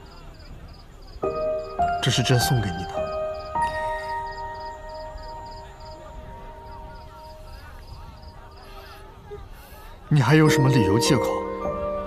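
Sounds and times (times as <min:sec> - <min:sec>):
soft music of held notes: 0:01.2 - 0:12.0.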